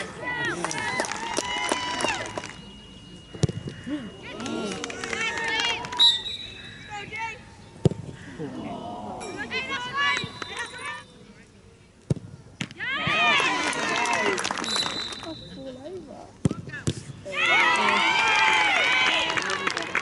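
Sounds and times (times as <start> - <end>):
players shouting and cheering: 0.0 - 2.7, 3.8 - 7.4, 8.3 - 11.0, 12.8 - 15.0, 17.2 - 20.0.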